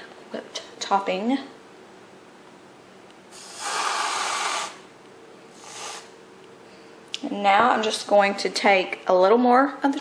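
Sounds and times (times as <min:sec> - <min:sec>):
whipped cream can spraying: 0:03.3 - 0:04.8, 0:05.6 - 0:06.1.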